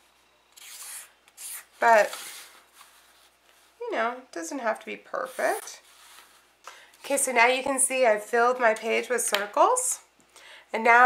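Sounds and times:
marker scratching on paper: 0:00.6 - 0:02.5.

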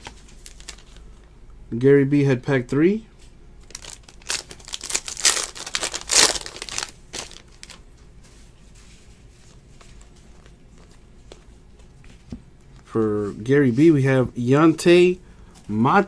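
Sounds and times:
foil wrapper tearing and crinkling: 0:00.0 - 0:01.0, 0:03.7 - 0:07.8.

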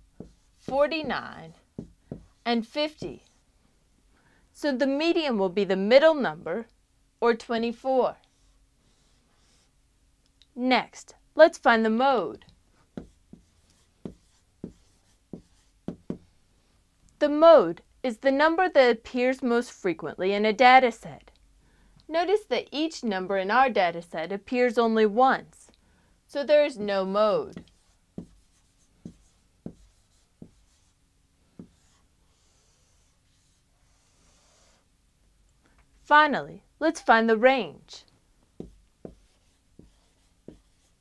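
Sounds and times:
marker writing on whiteboard: 0:00.2 - 0:03.4, 0:08.3 - 0:09.7, 0:12.8 - 0:16.2, 0:27.5 - 0:31.0, 0:31.6 - 0:34.8, 0:38.6 - 0:41.0.

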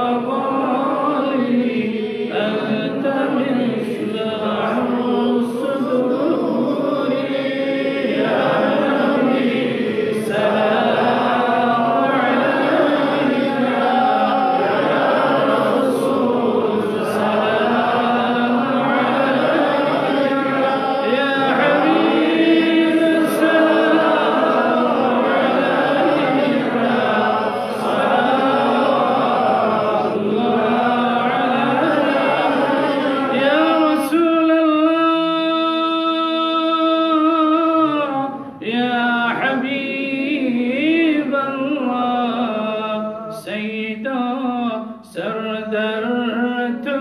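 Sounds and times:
men chanting in unison: 0:00.0 - 0:47.0.

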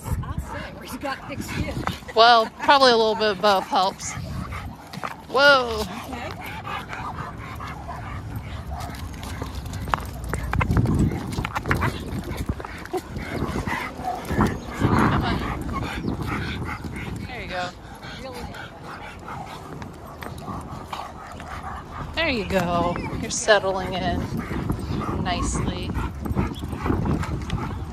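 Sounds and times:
dogs scuffling: 0:00.8 - 0:17.6.

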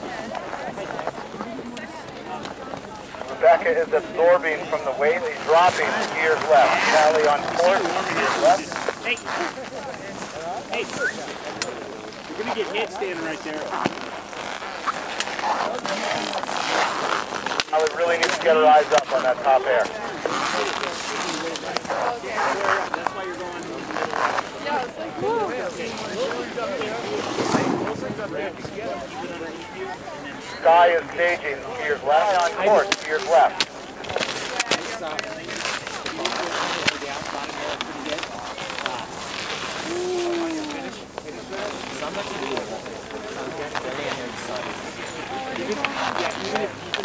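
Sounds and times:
steady outdoor hiss: 0:00.0 - 0:24.8, 0:25.5 - 0:47.0
faint indistinct voices: 0:00.0 - 0:47.0
sharp clicks and crackles: 0:12.5 - 0:19.2, 0:32.3 - 0:47.0.

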